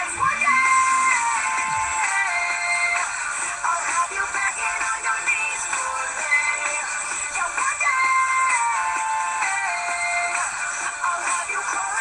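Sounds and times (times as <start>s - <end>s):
pop song with vocals: 0.0s - 12.0s.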